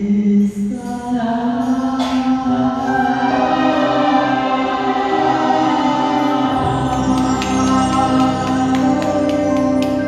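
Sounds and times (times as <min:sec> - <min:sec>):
backing music: 0:02.0 - 0:10.0.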